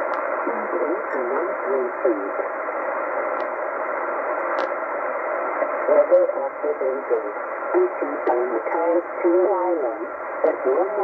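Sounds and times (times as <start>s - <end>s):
shortwave radio hiss: 0.0s - 11.0s.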